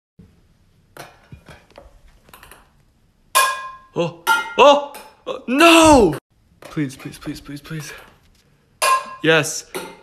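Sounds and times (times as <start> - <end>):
metal pan clang ringing: 3.4 - 5.1, 8.8 - 10.0.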